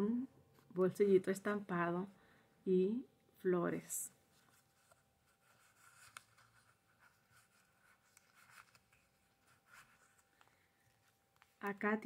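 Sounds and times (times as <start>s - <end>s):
paper rustling and scraping: 4.3s - 11.6s.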